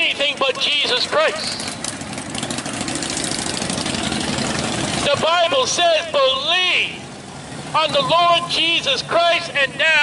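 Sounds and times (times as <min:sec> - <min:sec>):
motorcycle engine running: 0:00.0 - 0:07.9.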